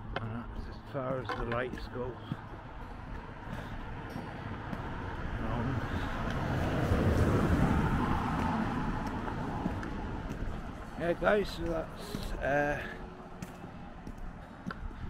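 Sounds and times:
road vehicle passing by: 2.0 - 15.0.

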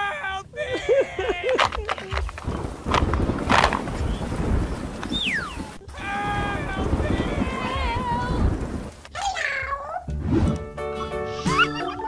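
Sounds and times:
wind buffeting microphone: 1.7 - 9.0.

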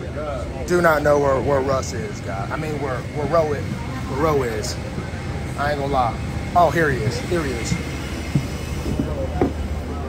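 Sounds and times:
faint voices: 0.0 - 10.0
vehicle cabin rumble: 6.8 - 10.0.

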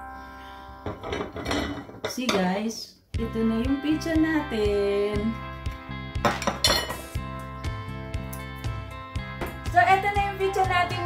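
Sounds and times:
background music: 3.1 - 11.0.

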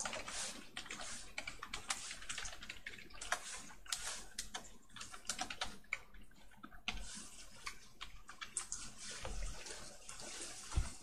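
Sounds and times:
typing on computer keyboard: 0.0 - 9.0.

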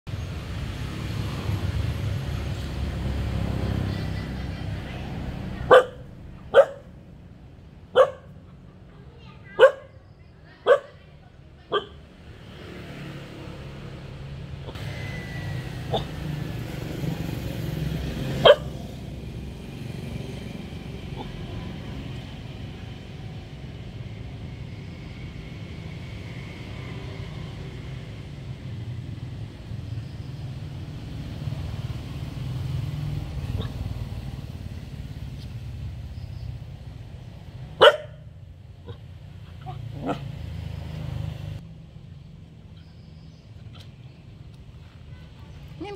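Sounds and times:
dog barking: 5.6 - 6.9, 7.9 - 8.5, 9.5 - 10.0, 10.6 - 11.0, 11.7 - 12.0, 18.4 - 18.8, 33.6 - 33.8, 37.8 - 40.4.

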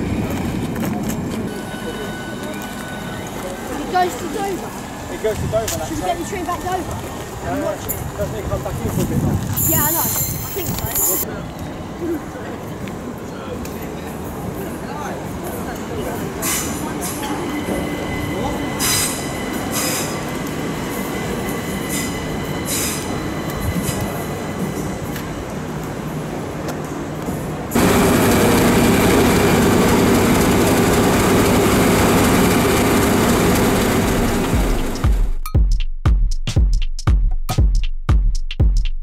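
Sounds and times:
electric train whine: 0.0 - 8.8, 9.6 - 35.2
train rumble: 0.0 - 35.5
loud steady noise: 27.7 - 35.4
electronic music with a beat: 34.5 - 39.0.

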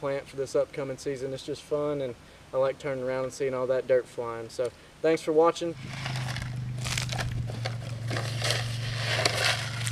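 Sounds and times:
steady low hum: 5.7 - 9.9
footsteps crunching on dirt: 5.8 - 9.9.

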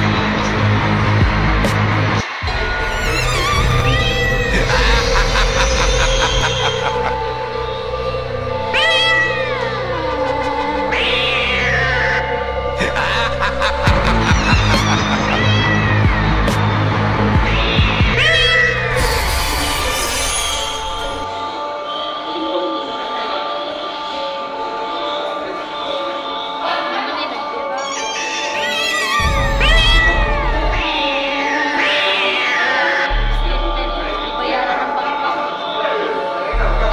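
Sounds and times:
background music: 0.0 - 36.9
cat meowing: 2.7 - 7.0, 8.7 - 12.3, 14.2 - 16.4, 17.4 - 21.2, 27.8 - 33.2.

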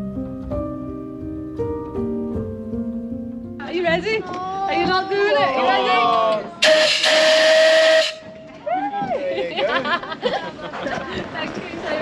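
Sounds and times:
steam hissing: 6.6 - 8.2
steam whistle: 6.6 - 8.3.

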